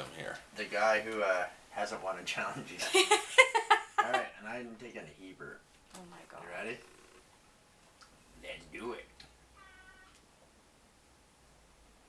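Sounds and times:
faint high-pitched cry: 9.5 - 10.2.

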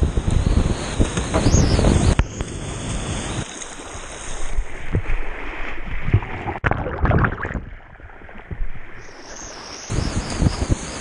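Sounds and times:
muffled underwater rushing: 0.1 - 11.0
loud splash: 4.5 - 8.8.

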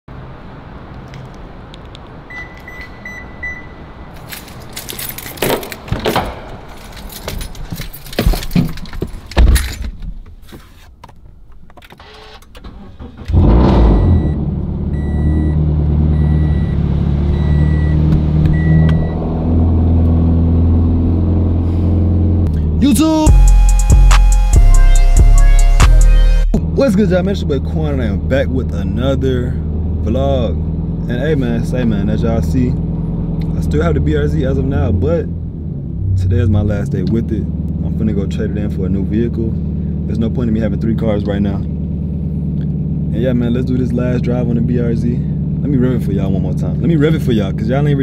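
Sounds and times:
dashboard chime beeping: 2.3 - 3.8, 16.2 - 19.2, 23.2 - 26.6
short beeps: 2.3 - 3.8, 13.9 - 19.2
keys jangling: 4.1 - 10.0
car doors and knocks: 5.4 - 10.3
car engine starting and idling: 10.4 - 48.0
music with a beat: 23.3 - 26.6.

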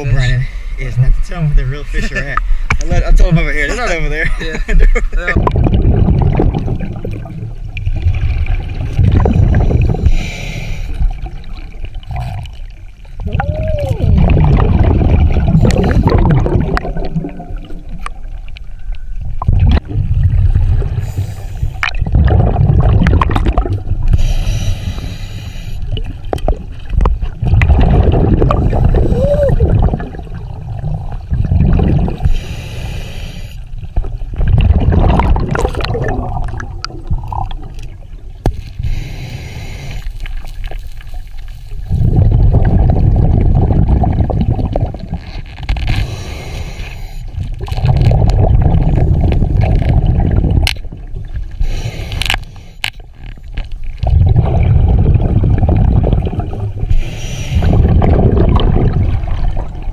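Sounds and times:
bubbling exhaled air: 5.2 - 18.3, 19.3 - 40.8, 41.7 - 52.9, 54.0 - 59.9
scuba regulator breathing underwater: 9.1 - 11.3, 14.8 - 17.4, 20.8 - 23.0, 24.0 - 26.0, 28.1 - 30.0, 31.6 - 33.8, 38.7 - 40.4, 45.9 - 50.4, 51.5 - 53.0, 56.9 - 58.7
hissing inhale: 9.6 - 11.1, 21.0 - 21.8, 24.1 - 25.9, 32.2 - 33.8, 38.8 - 40.4, 45.9 - 47.5, 51.6 - 52.9, 56.9 - 57.8.

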